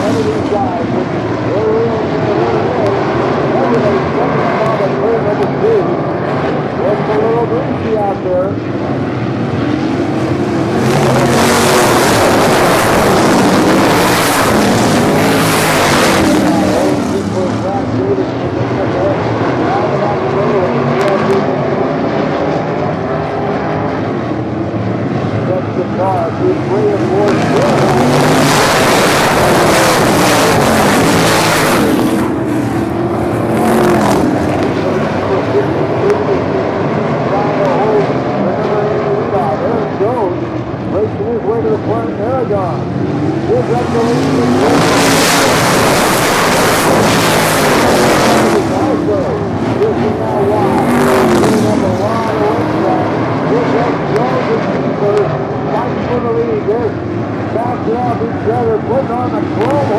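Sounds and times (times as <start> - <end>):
race car engines lapping: 0.0 - 59.9.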